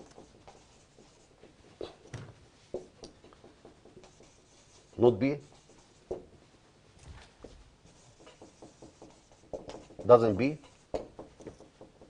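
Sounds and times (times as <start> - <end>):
marker pen scratching on whiteboard: 0.0 - 6.5, 7.4 - 12.0.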